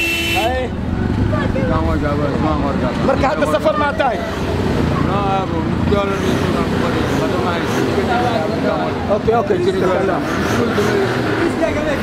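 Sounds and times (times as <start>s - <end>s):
men talking: 0.4s - 12.0s.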